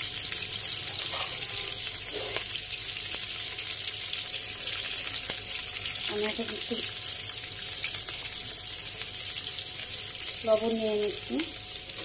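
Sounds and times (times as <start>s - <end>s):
vegetables sizzling in frying pan: 0.0s - 12.0s.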